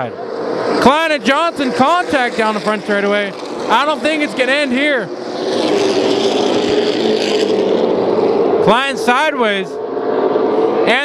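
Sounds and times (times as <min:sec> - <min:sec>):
race car engines droning: 0:00.0 - 0:11.0.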